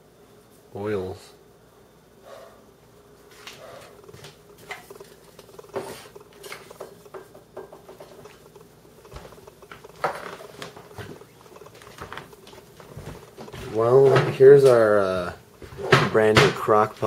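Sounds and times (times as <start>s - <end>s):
faint steady hum: 0.0s - 17.0s
bottles tapping and clinking: 4.0s - 14.4s.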